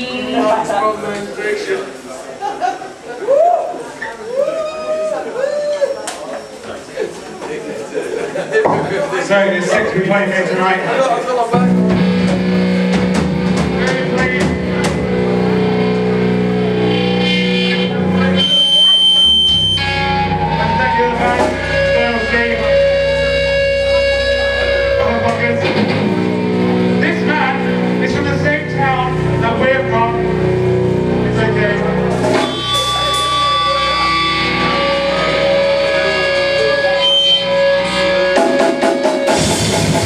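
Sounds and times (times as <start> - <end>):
distorted electric guitars and bass: 11.5 - 40.0
high feedback whine: 11.6 - 40.0.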